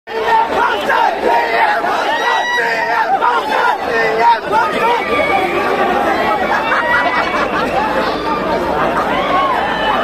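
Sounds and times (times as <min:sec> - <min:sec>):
large crowd shouting: 0:00.1 - 0:10.0.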